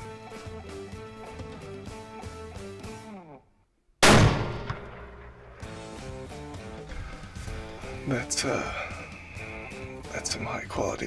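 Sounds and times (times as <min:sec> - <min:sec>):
rifle shot: 0:04.0 - 0:06.0.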